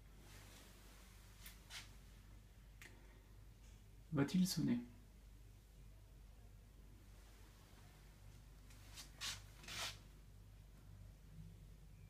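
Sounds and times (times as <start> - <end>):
hand rustling against phone: 8.7 - 10.0.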